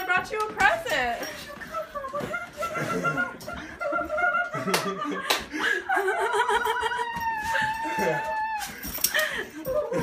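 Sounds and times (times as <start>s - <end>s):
laughter: 1.5s - 7.3s.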